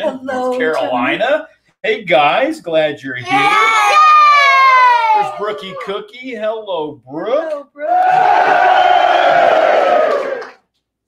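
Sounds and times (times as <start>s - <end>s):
high-pitched vocal cry: 3.2s - 6.0s.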